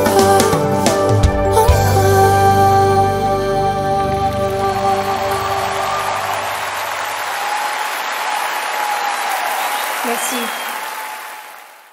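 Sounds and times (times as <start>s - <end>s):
audience applauding: 3.9s - 11.9s.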